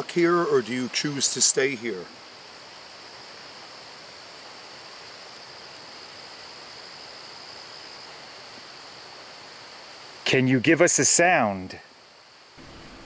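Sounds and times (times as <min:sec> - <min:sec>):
insects trilling: 0:00.0 - 0:13.0
low background hiss: 0:00.0 - 0:13.0.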